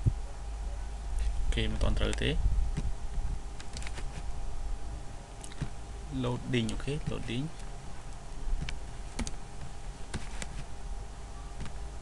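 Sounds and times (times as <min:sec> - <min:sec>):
low hum: 0:00.0 - 0:12.0
keyboard keystroke clicks: 0:08.6 - 0:09.4.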